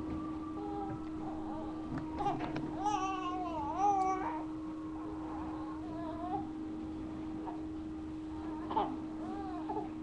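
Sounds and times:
steady hum: 0.0 - 10.0
baby crying: 0.6 - 4.5.

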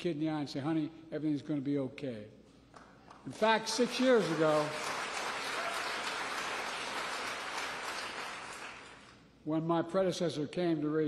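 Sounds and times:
audience applause: 3.4 - 9.1.

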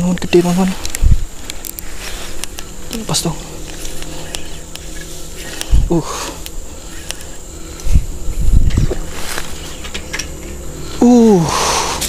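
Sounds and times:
man grunting: 11.0 - 11.8.

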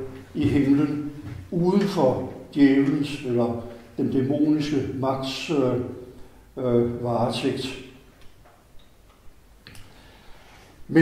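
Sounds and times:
faint small clicks: 8.2 - 10.0.

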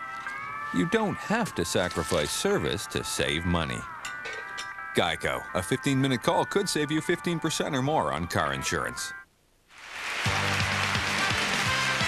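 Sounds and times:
tv theme music: 0.0 - 9.2, 9.8 - 12.0.

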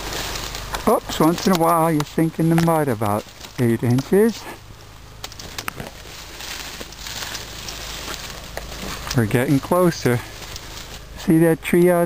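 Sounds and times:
stems snapping: 0.0 - 4.6, 5.2 - 11.9
grass and reeds rustling: 0.0 - 12.0.

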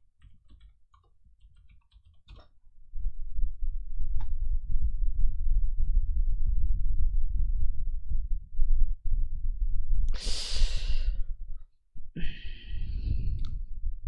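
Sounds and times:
low rumble: 3.0 - 10.2, 12.7 - 14.0
person sighing: 10.2 - 11.2, 12.2 - 13.3.

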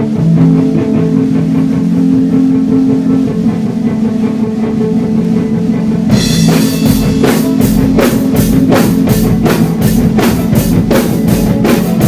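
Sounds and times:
guitar sustained notes: 0.0 - 12.0
live rock band playing: 0.0 - 12.0.

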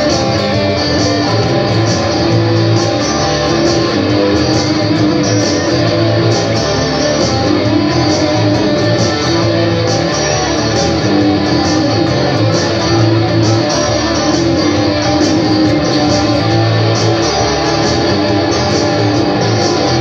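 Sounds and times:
layered electric guitar loops: 0.0 - 20.0.

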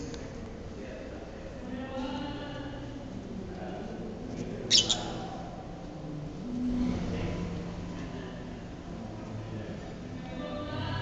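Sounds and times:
cage bird chirping: 4.7 - 5.5.

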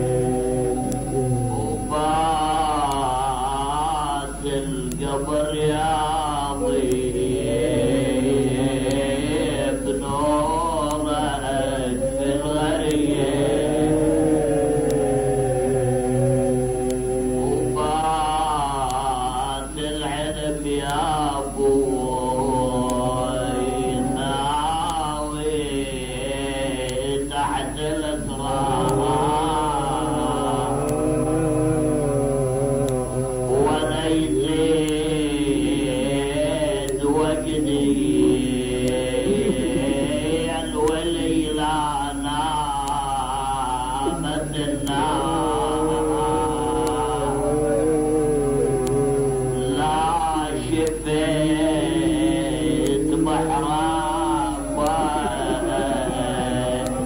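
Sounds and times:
faint high whine: 0.0 - 57.0
low recording hum: 0.0 - 57.0
man chanting a lament: 0.0 - 57.0.

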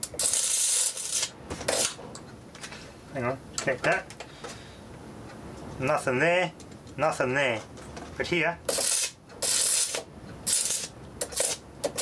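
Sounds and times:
electric arcs crackling: 0.0 - 2.0, 8.7 - 12.0.

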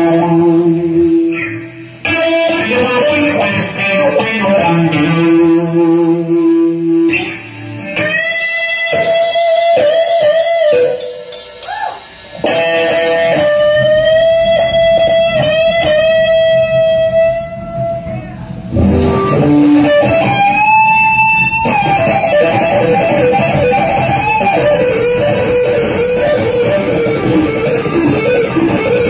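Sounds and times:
bass guitar: 0.0 - 29.0
drums: 0.0 - 29.0
electric guitar bent notes: 0.0 - 29.0.

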